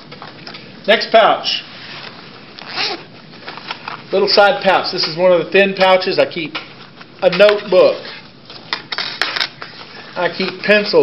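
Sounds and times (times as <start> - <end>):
nylon bag rustling: 1.8 - 4.2.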